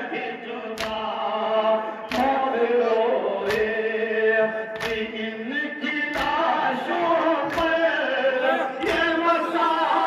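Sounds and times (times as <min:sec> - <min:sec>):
men chanting through microphones: 0:00.0 - 0:10.0.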